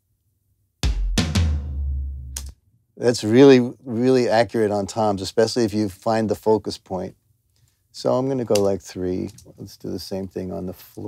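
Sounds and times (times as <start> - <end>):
low tom-tom fill: 0.8 - 2.5.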